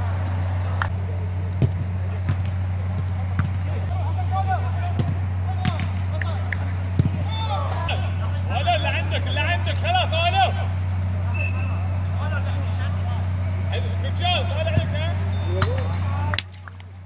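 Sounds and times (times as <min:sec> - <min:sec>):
steady low hum: 0:00.0 - 0:17.0
players shouting: 0:02.1 - 0:16.4.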